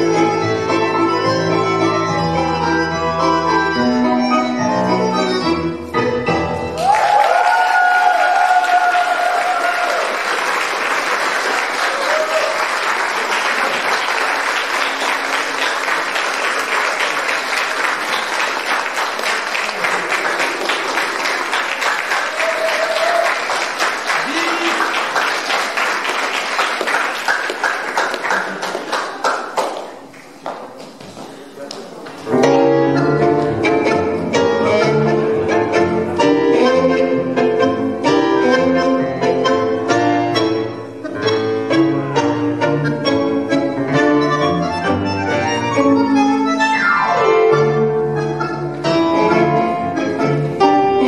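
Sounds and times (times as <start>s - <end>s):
audience applauding: 6.8s - 30.9s.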